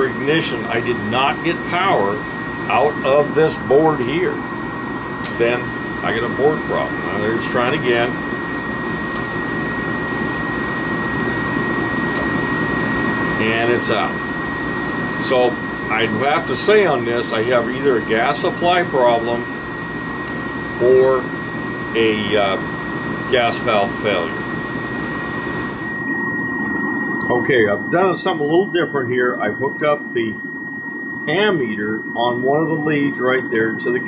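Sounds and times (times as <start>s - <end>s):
furnace blower running: 0.0s - 28.5s
thin high whine: 0.0s - 34.0s.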